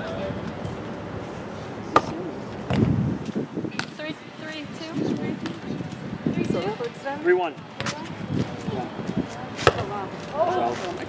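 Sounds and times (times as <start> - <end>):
people talking in background: 0.0 - 2.8, 3.4 - 11.0.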